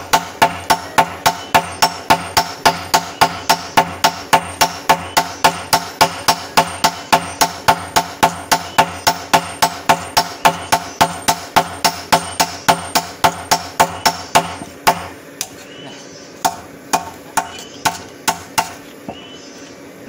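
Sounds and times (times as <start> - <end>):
sledgehammer striking hot metal: 0.0 - 15.1.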